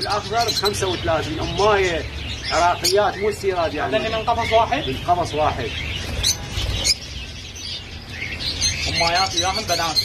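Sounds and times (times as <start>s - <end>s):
lovebirds chirping: 0.0s - 10.0s.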